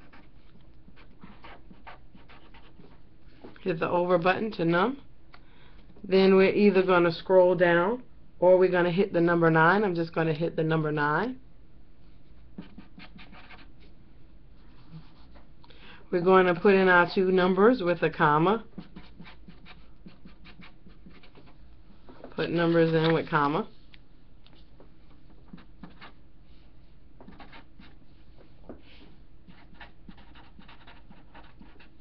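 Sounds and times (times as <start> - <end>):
marker scratching on paper: 0.9 - 3.0, 12.3 - 13.8, 14.6 - 15.4, 18.7 - 21.6, 25.4 - 26.2, 27.2 - 28.0, 29.5 - 32.0.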